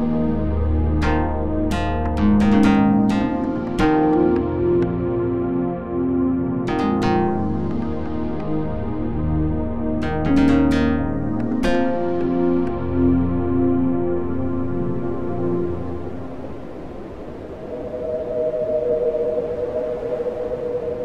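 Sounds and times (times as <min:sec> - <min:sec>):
ambient instrumental music: 0:00.0 - 0:21.0.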